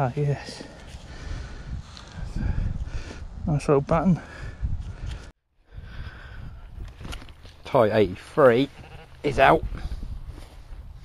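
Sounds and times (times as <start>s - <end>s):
wind buffeting microphone: 1.0s - 8.2s, 8.8s - 11.0s.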